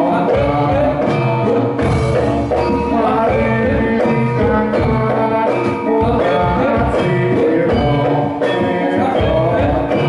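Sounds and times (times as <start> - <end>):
drum beat: 0.0 - 10.0
metallophones and gongs ringing: 0.0 - 10.0.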